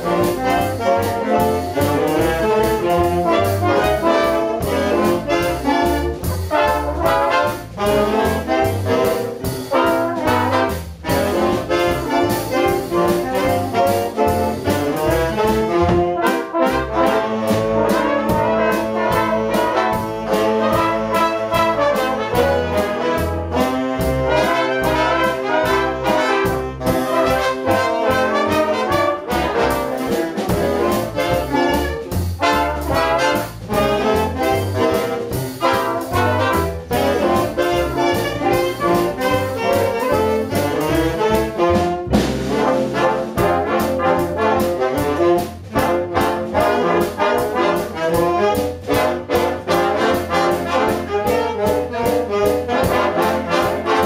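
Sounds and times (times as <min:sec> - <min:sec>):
jazz big band playing: 0:00.0 - 0:54.0.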